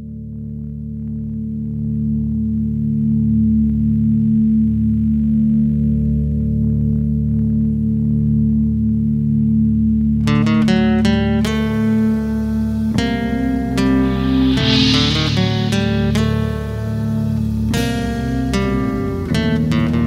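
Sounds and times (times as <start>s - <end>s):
ambient drone chord: 13.6s - 17.2s.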